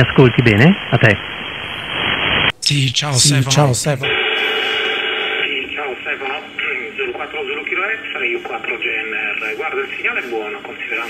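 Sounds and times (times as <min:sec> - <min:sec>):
radio static hiss: 0:00.0 - 0:11.0
voice over radio: 0:02.6 - 0:11.0.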